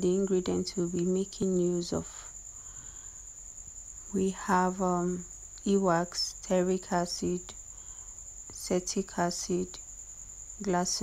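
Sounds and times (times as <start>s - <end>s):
background hiss and hum: 0.0s - 11.0s.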